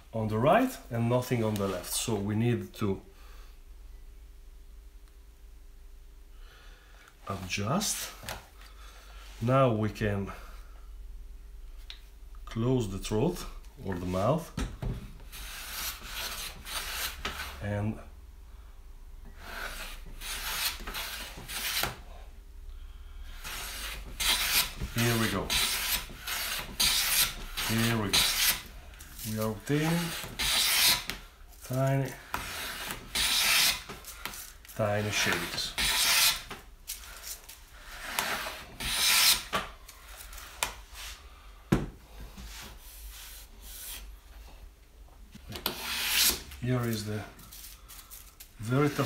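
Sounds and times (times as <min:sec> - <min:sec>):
hand plane rasping over wood: 0:23.4 - 0:28.6, 0:29.8 - 0:31.1, 0:32.4 - 0:33.8, 0:35.2 - 0:36.4, 0:38.0 - 0:39.5.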